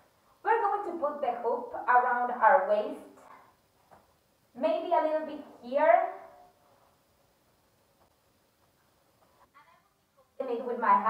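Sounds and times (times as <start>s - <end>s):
woman speaking: 0.4s - 3.3s, 4.6s - 6.4s, 9.6s - 11.0s.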